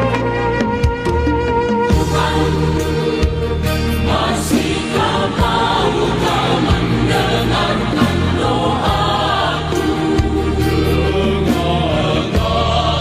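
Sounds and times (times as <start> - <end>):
choir singing worship song: 1.9 - 13.0.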